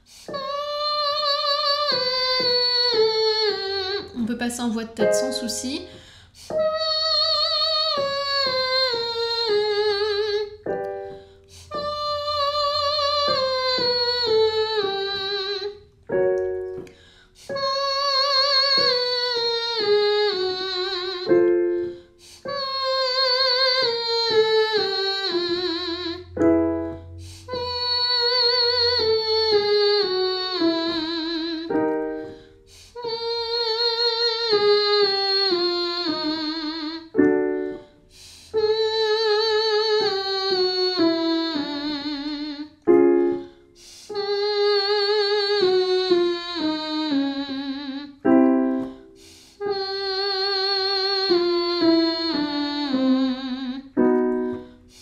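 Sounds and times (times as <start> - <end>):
piano chords: 0.0 - 55.0
woman singing scales: 0.0 - 55.0.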